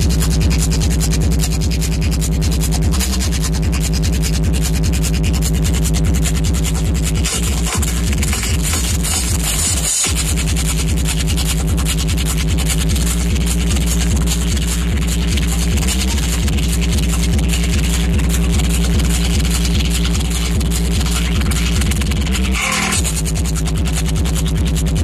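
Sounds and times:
electronic dance music with heavy bass: 0.0s - 25.0s.

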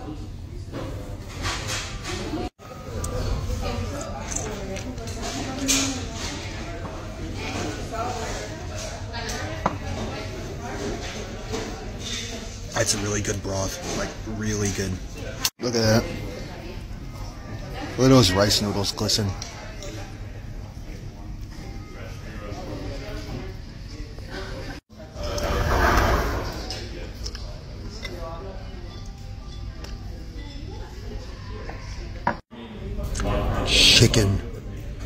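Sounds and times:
chatter of voices: 0.0s - 35.0s.

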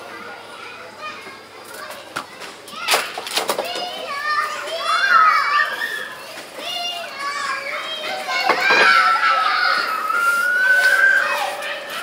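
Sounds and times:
children calling out: 0.0s - 12.0s.

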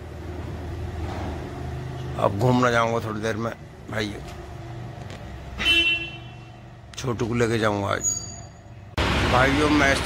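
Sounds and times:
vehicle horn toot: 5.6s - 6.6s.

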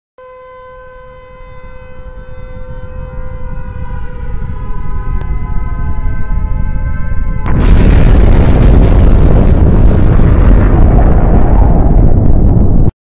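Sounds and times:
held tone with overtones: 0.2s - 7.7s
deep rumble: 1.5s - 12.9s.

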